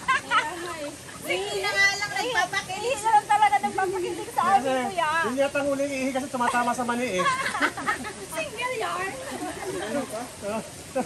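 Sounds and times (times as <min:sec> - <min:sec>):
rushing stream: 0:00.0 - 0:11.0.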